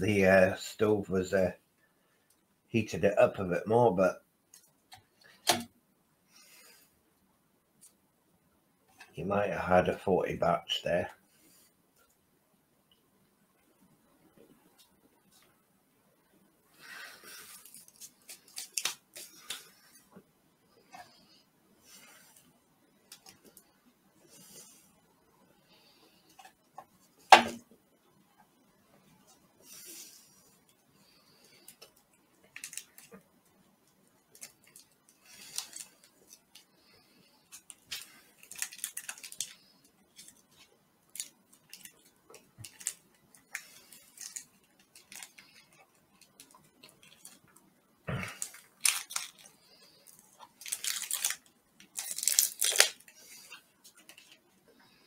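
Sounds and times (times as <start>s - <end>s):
food wrappers rustling: 16.8s - 20.0s, 31.4s - 33.2s, 34.3s - 47.6s, 48.3s - 54.5s.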